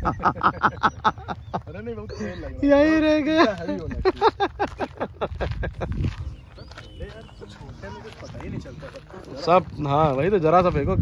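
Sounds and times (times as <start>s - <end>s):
wind rumble on microphone: 5.2s - 11.0s
faint voices: 6.3s - 11.0s.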